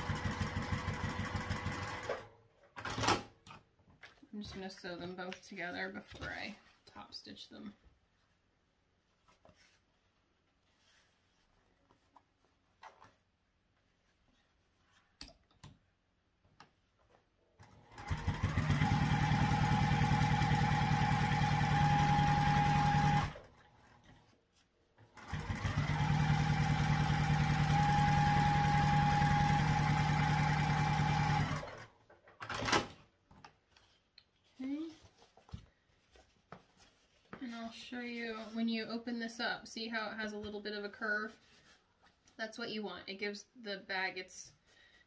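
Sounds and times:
sewing machine stitching: 0.0 - 3.3, 17.6 - 24.1, 25.0 - 33.0.

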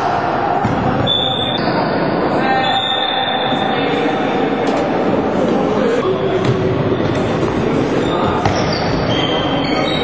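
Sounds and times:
floorball game noise: 0.0 - 10.0.

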